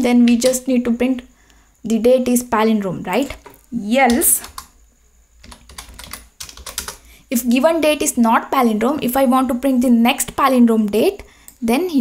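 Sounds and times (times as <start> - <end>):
keyboard typing: 0.2 - 0.8, 3.2 - 4.8, 5.4 - 7.1.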